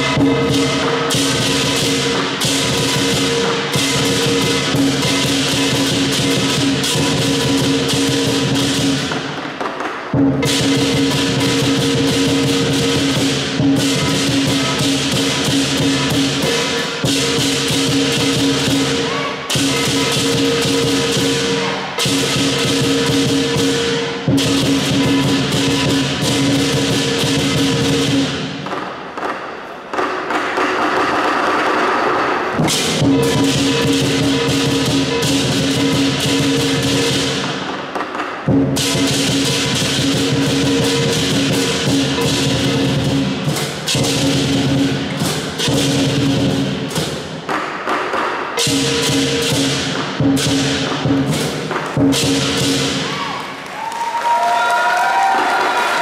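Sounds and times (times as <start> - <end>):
large drum beating: 0.0 - 53.6
cymbals clashing: 0.0 - 56.0.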